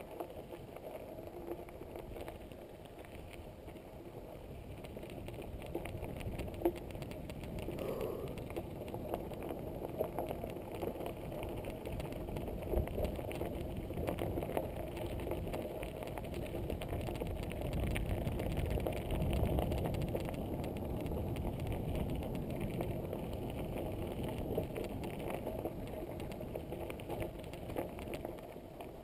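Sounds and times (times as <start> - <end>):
bike rattles and clicks: 0.0 - 29.0
bike tyres crunching on gravel: 0.0 - 29.0.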